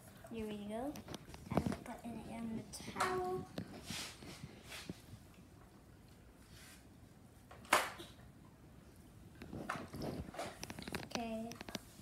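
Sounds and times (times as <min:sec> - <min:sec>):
soft fabric rustles: 0:00.1 - 0:05.3, 0:09.4 - 0:12.0
brushing rustle: 0:03.3 - 0:05.2.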